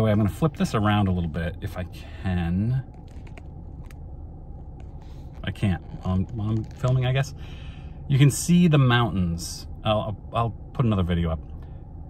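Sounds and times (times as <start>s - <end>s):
low hum of car cabin: 0.0s - 12.0s.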